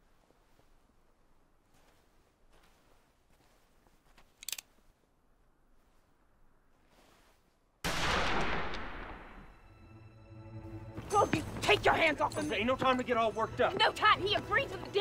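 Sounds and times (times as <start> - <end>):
gunshot with echo: 7.9 - 9.5.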